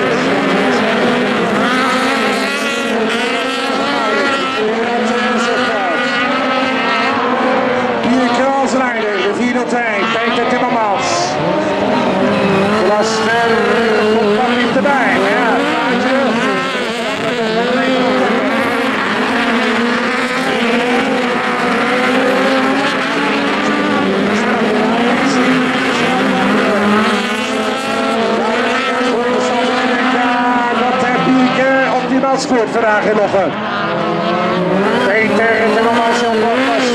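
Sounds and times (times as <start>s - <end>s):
racing car engines revving: 0.0s - 36.9s.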